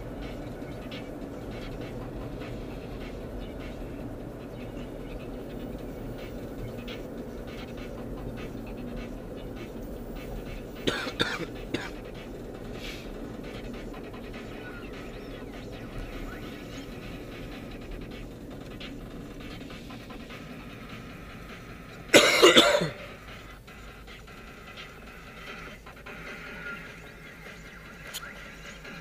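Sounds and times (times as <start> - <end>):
car engine and tyres rumbling: 0.0 - 29.0
person coughing: 10.8 - 12.0, 22.1 - 23.2.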